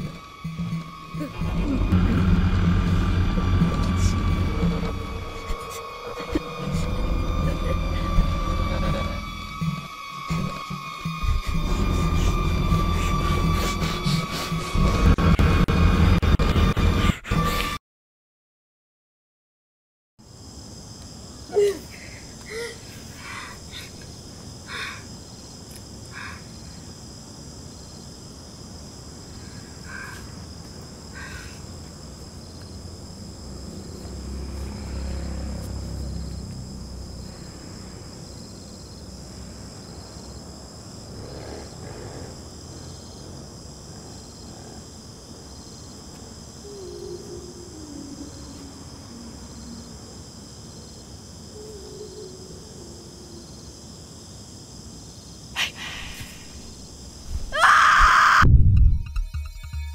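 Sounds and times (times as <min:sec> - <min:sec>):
crickets chirring: 0:00.0 - 0:15.2, 0:20.2 - 0:59.9
low rumble: 0:01.2 - 0:09.6, 0:58.4 - 0:59.3
faint pulsing chirp: 0:44.0 - 0:54.1.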